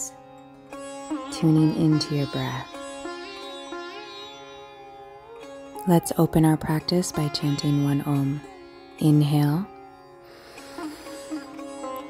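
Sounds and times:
soft instrumental music: 0.0 - 12.0.

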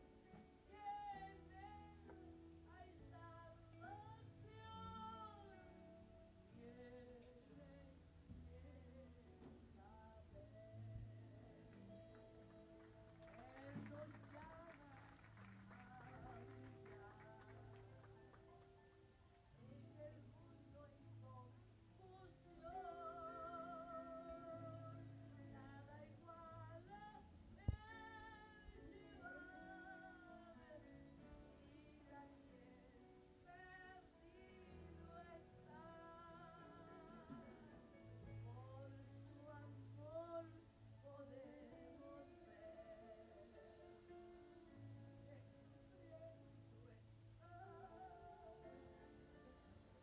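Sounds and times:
soft instrumental backing: 0.0 - 50.0
woman singing slow notes: 0.6 - 12.2, 19.6 - 50.0.

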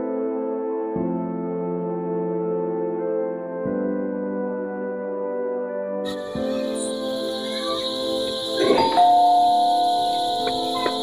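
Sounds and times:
soft background music: 0.0 - 11.0
two-note doorbell chime: 6.1 - 11.0.

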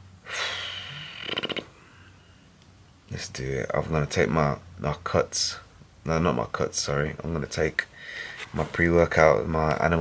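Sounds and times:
man sighing heavily: 0.2 - 2.2
creaky rattle in throat: 1.0 - 1.8.

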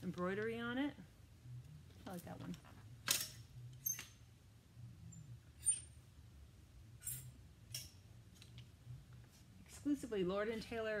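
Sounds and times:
hangers clicking on a rack: 3.0 - 4.2, 7.0 - 8.7.

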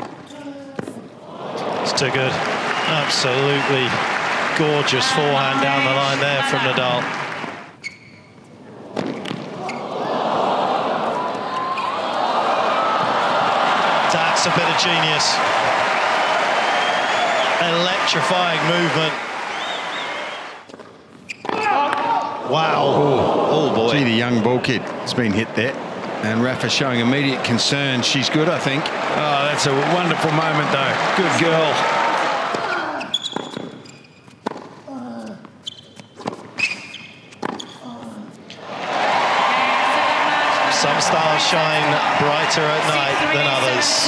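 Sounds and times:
crowd noise: 1.0 - 20.7, 21.7 - 33.2, 38.5 - 44.0.

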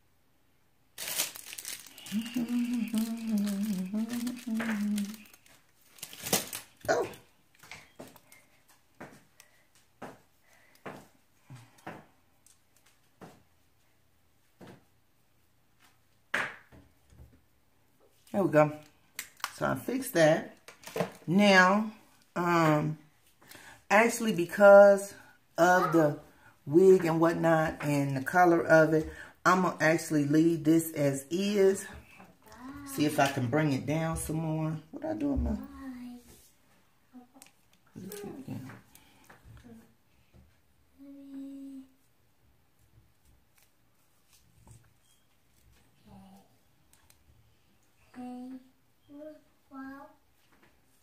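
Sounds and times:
woman humming: 2.0 - 5.3.

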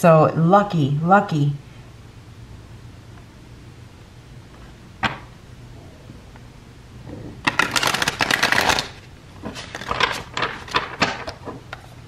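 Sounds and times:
cards being shuffled: 7.4 - 12.0.

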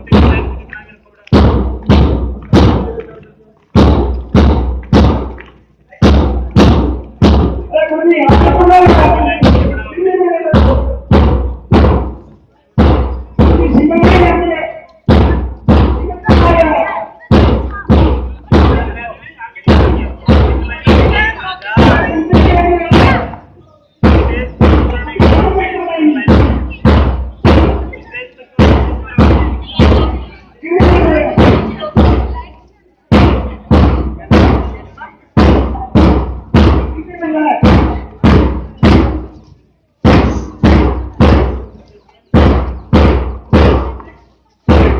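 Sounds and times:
drum beating marching pace: 0.0 - 44.9.

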